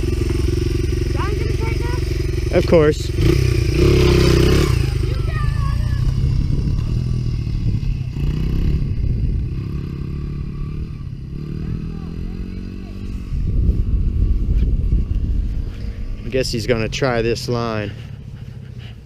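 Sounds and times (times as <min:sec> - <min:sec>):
dirt bike engine revving: 0:00.0 - 0:18.4.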